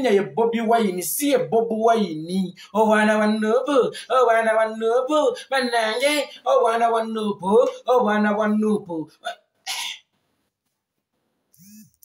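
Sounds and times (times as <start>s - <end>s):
man chanting: 0.0s - 9.3s.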